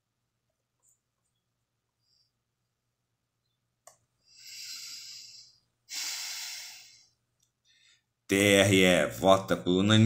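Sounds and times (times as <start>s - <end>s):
person breathing: 1.9s - 2.5s, 4.2s - 8.2s.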